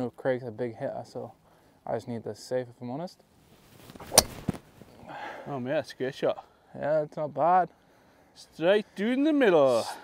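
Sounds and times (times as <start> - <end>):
golf club striking ball: 4.0 - 4.6.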